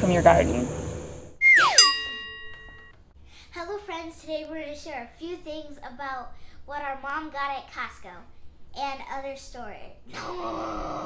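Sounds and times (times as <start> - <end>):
bright chime ringing: 1.4 - 2.9
falling pitch glide: 1.4 - 2.9.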